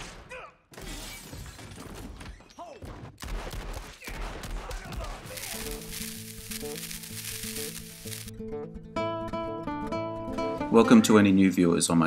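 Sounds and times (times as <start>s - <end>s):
shattering splintering debris: 4.3s - 8.3s.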